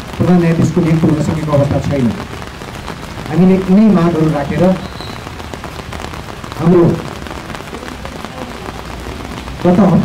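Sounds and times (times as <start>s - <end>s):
man speaking into microphone: 0.0s - 2.3s, 3.3s - 5.0s, 6.6s - 8.9s, 9.6s - 10.0s
background hiss: 0.0s - 10.0s.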